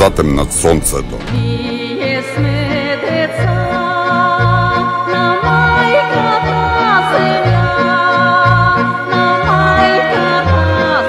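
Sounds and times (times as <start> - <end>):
folk band with violin and accordion: 1.3 - 11.0
woman singing: 1.3 - 11.0.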